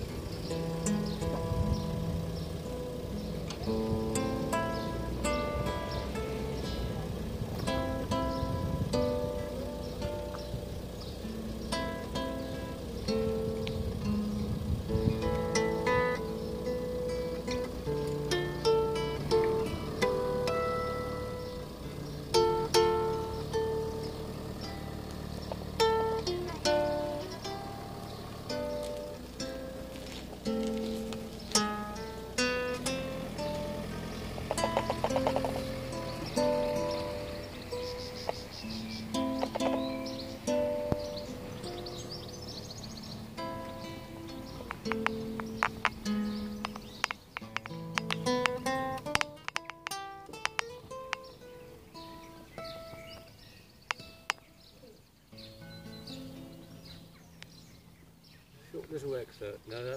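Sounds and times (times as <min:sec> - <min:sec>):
fingerstyle acoustic guitar: 0:00.0 - 0:59.4.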